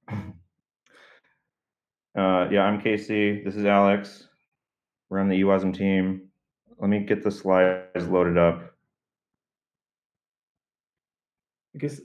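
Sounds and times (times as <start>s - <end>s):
man saying uh: 0.1s - 0.3s, 2.2s - 4.2s, 5.2s - 6.2s, 6.8s - 8.6s, 11.8s - 12.0s.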